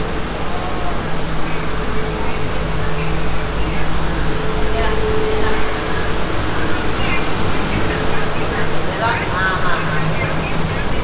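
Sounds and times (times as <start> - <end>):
faint voices: 0.0 - 11.0
train carriage rumble and hum: 0.0 - 11.0.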